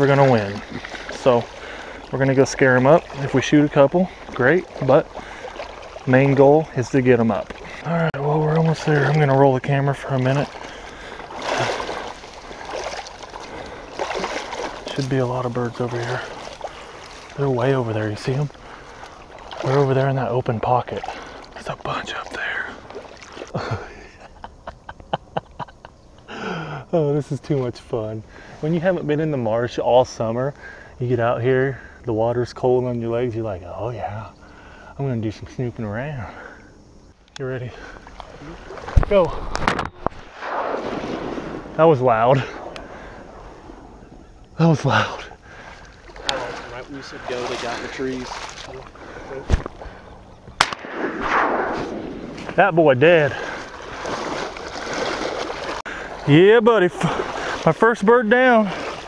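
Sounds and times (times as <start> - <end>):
legs wading through water: 0.0 - 24.8, 37.6 - 59.0
breathy laugh: 23.4 - 26.9
shotgun reports: 50.6 - 53.2.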